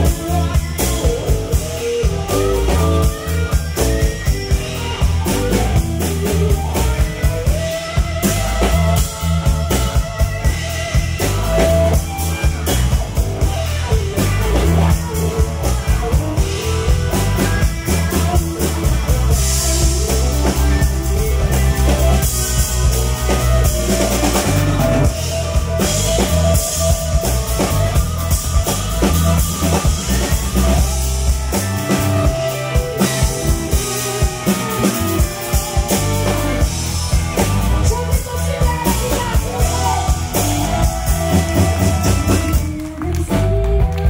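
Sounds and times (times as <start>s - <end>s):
blues band playing: 0.0s - 44.0s
drum kit beat: 0.0s - 44.0s.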